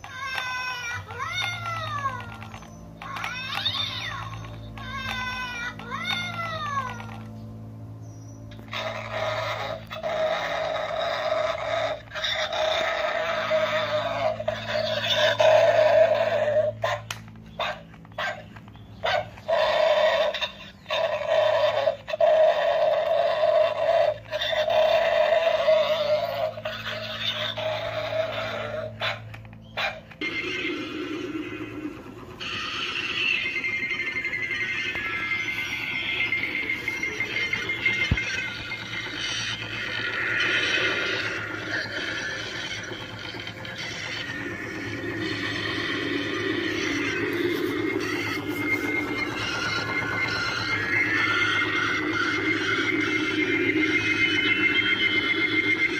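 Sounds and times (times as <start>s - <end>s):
recorded dog barking from toy speaker: 8.7s - 30.2s
electronic sound effect: 30.2s - 55.9s.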